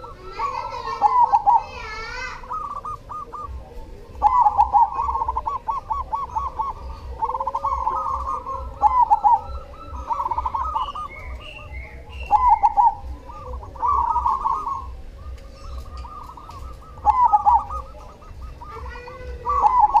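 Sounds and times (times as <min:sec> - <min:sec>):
dove cooing: 0:00.0 - 0:20.0.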